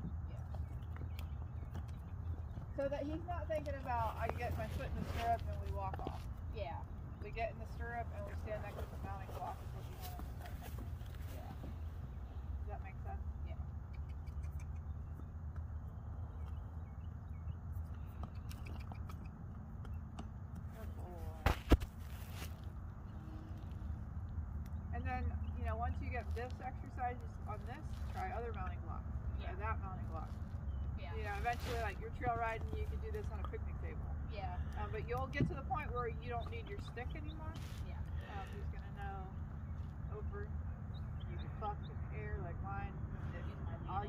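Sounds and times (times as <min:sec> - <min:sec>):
steady low rumble: 0:00.0 - 0:44.0
voices talking indistinctly: 0:02.5 - 0:14.9, 0:24.8 - 0:44.0.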